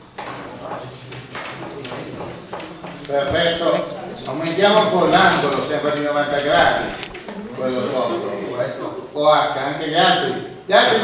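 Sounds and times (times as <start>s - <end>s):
indistinct voices talking quietly: 0.0s - 11.0s.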